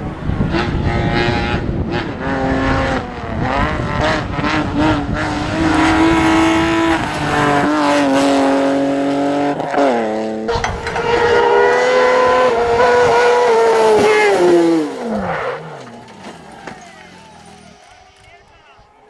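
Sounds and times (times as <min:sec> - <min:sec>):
race car engine at high revs: 0:00.0 - 0:18.3.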